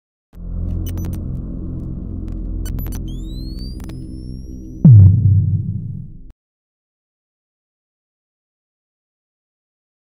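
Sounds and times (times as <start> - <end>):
deep electronic hum: 0.4 - 6.3
sharp digital clicks: 2.6 - 6.0.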